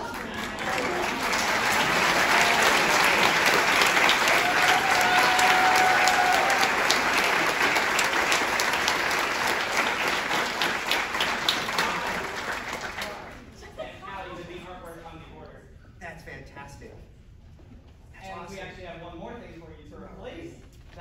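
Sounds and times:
audience applause: 0.0 - 13.6.

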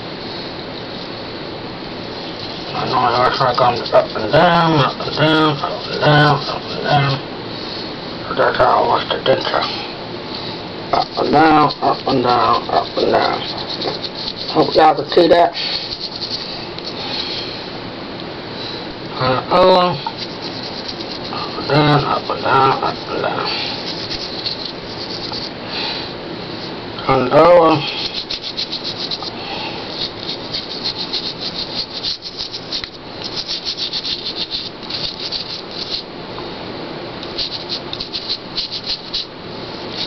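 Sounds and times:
brush scrubbing denture: 2.2 - 7.2, 10.9 - 17.4, 19.3 - 25.6, 27.4 - 36.1, 37.2 - 40.0.

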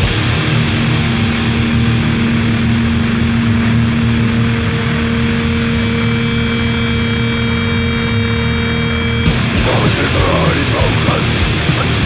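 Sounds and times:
distorted electric guitar drone: 0.0 - 12.0
noise and hum: 0.0 - 12.0.

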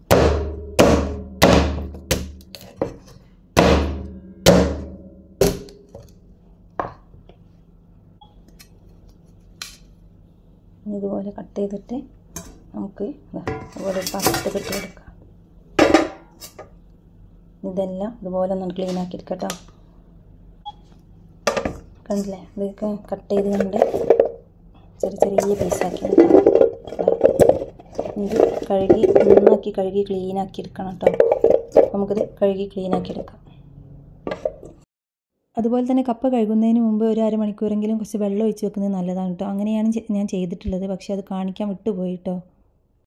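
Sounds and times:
cleaver chopping on wooden board: 0.1 - 2.4.

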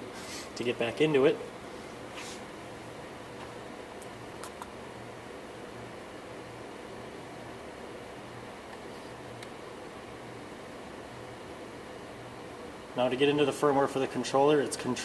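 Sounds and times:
server cooling fans hissing: 0.0 - 15.0.

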